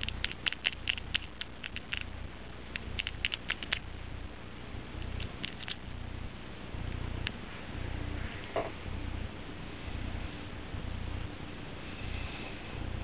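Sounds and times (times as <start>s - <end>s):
fingernails clicking together: 0.0s - 2.1s.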